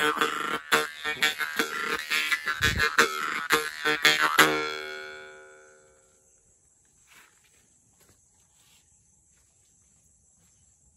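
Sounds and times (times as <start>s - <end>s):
mouth harp drone: 0.0s - 6.2s.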